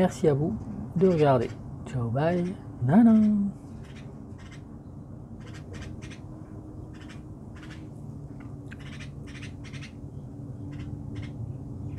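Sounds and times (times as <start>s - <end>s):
steady low hum: 0.0s - 11.9s
birds chirping: 0.9s - 11.9s.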